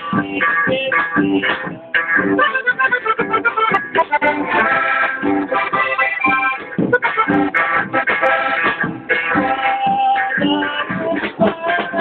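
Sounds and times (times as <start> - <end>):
live band playing: 0.0 - 12.0.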